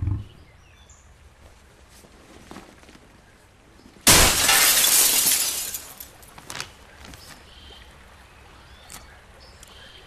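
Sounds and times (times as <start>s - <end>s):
glass shattering: 4.1s - 6.1s.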